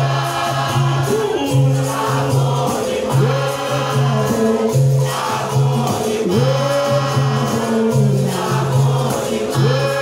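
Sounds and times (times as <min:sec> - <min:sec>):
berimbaus and pandeiros rhythm: 0:00.0 - 0:10.0
group of voices singing: 0:00.0 - 0:10.0.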